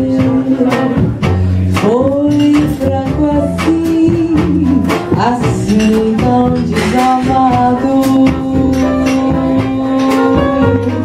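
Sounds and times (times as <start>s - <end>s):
drum kit with cymbals: 0.0s - 11.0s
piano: 0.0s - 11.0s
plucked double bass: 0.0s - 11.0s
woman singing: 0.0s - 11.0s.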